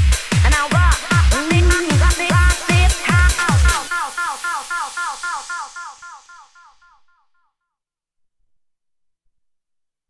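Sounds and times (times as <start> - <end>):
hiss: 1.0 - 6.8.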